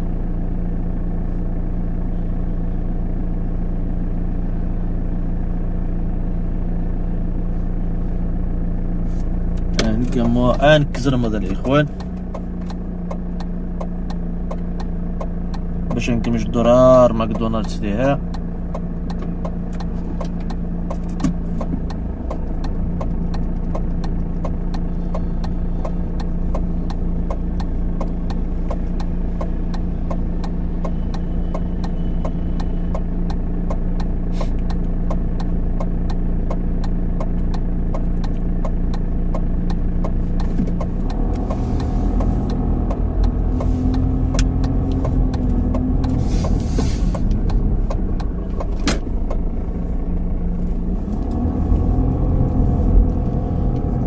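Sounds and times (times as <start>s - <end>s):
car engine idling: 0.0s - 54.0s
car pulling away rumble: 0.0s - 54.0s
light ticking: 9.5s - 50.3s.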